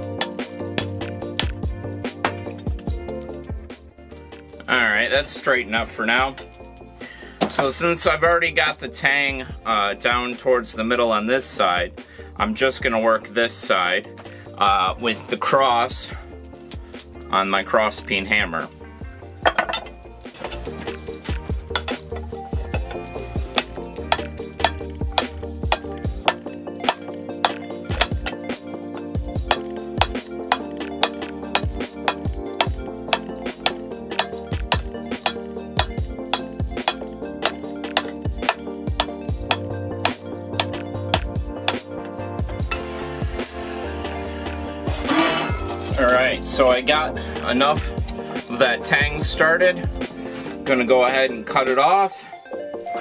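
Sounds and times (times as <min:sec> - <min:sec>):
hammer striking steel on anvil: 0:22.8 - 0:28.4, 0:29.4 - 0:41.9.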